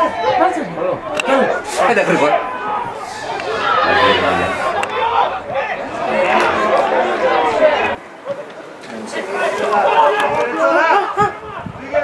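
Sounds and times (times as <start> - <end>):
voices shouting and talking: 0.0 - 12.0.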